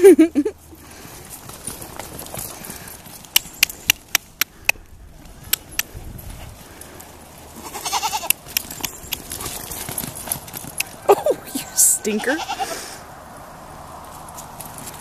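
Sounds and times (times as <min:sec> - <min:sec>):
goat bleating: 0:07.6 - 0:08.4, 0:12.0 - 0:13.0.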